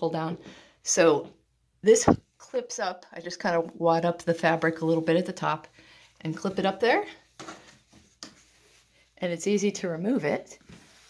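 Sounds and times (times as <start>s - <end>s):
fabric rustling: 10.6s - 11.0s.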